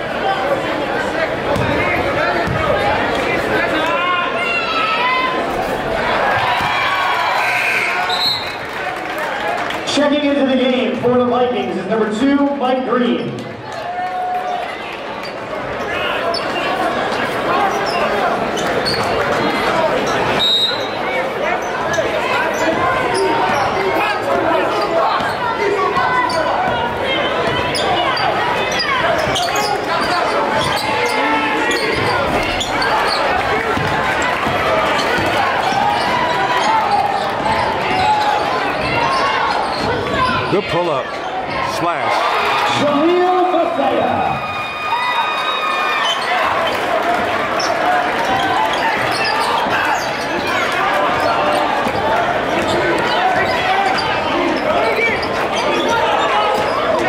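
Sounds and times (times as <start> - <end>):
crowd shouting and chatter: 0.0 - 57.0
sneakers squeaking: 1.3 - 3.2, 15.2 - 41.8, 45.5 - 57.0.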